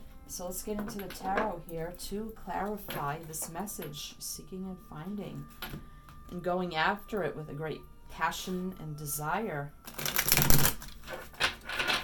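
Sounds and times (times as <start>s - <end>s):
cards being riffle-shuffled: 9.9s - 11.0s.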